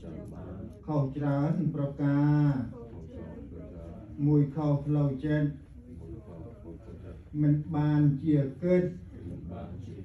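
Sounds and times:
man chanting in monotone: 0.0s - 10.0s.

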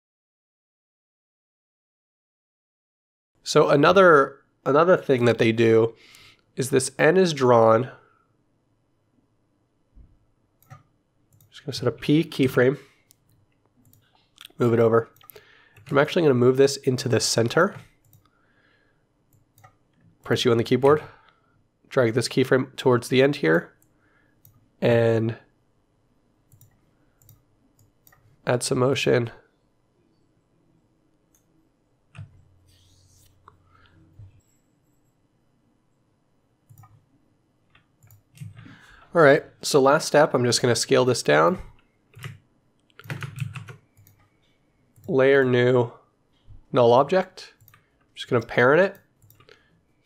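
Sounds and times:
computer mouse clicks: 10.6s - 11.5s, 12.4s - 16.0s, 17.7s - 18.3s, 19.3s - 20.0s, 26.5s - 28.4s, 36.7s - 37.0s, 37.7s - 38.7s, 41.8s - 45.1s, 47.6s - 48.0s, 48.9s - 49.6s
computer keyboard keys clicking: 42.2s - 42.4s, 43.0s - 44.3s.

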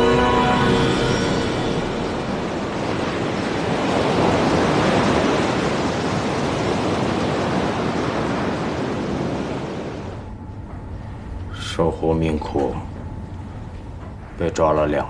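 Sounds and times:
sea waves washing: 0.0s - 10.3s.

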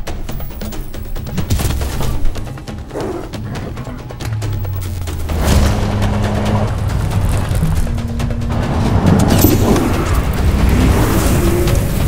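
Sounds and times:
dramatic trailer music: 0.0s - 12.0s
car engine and road noise: 2.1s - 12.0s.

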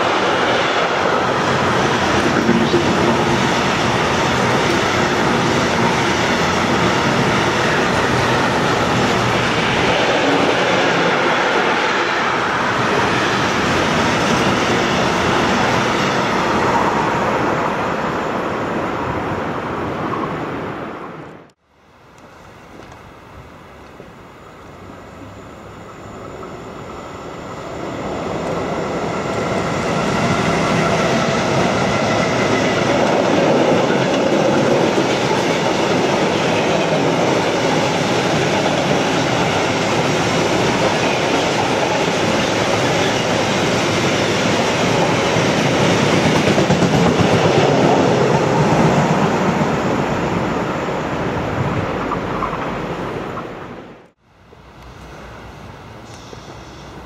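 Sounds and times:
freight train passing: 0.0s - 57.0s.

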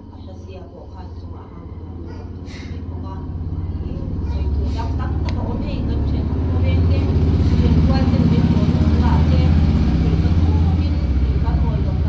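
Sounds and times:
faint indistinct voices: 0.0s - 12.0s
low steady rumble: 0.0s - 12.0s.

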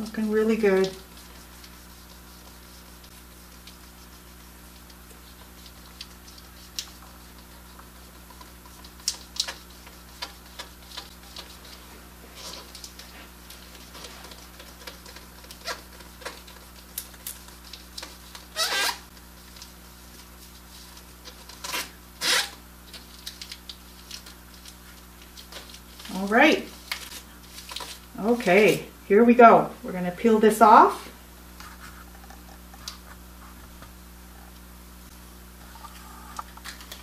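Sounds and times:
steady low hum: 0.0s - 37.0s
fingers rubbing sheet on rubber: 0.2s - 19.2s.

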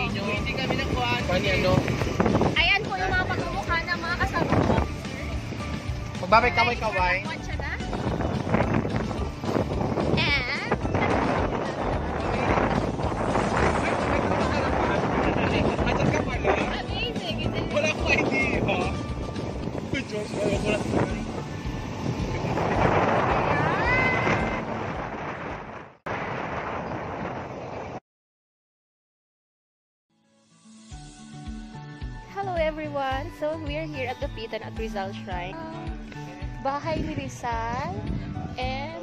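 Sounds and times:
vehicle ride noise: 0.0s - 28.0s, 31.4s - 39.0s.

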